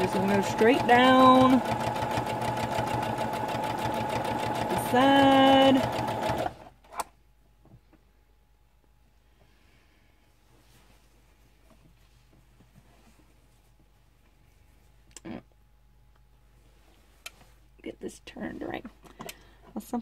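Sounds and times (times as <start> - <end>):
sewing machine stitching: 0.0 - 6.7
faint handling noise: 10.3 - 15.2, 16.1 - 17.8.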